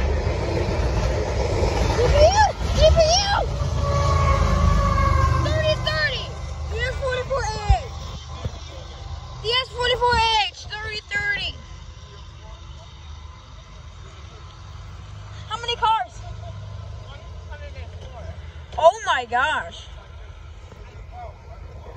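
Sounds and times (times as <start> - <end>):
diesel locomotive rumbling past: 0.0 - 21.9
voices calling out: 1.0 - 21.9.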